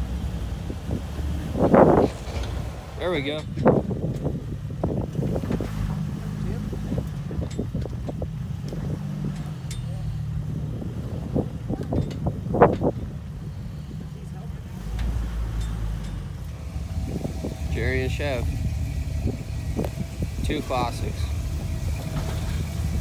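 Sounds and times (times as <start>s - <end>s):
engine running at low revs: 0.0s - 23.0s.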